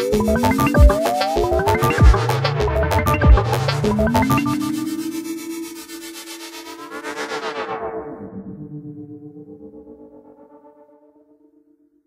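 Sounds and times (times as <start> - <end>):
synthesizer music: 0.0 - 9.6.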